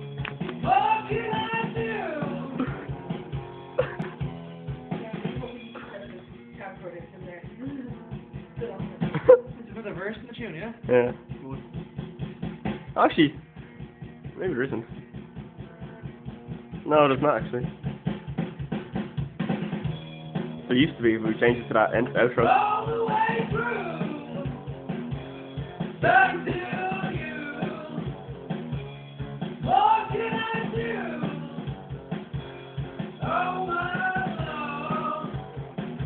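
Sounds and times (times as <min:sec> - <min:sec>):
rock music over speakers: 0:00.0 - 0:36.0
person singing: 0:00.6 - 0:02.9, 0:22.3 - 0:24.6, 0:26.0 - 0:28.1, 0:29.6 - 0:31.7, 0:33.2 - 0:35.4
kick and snare drum beat: 0:06.4 - 0:36.0.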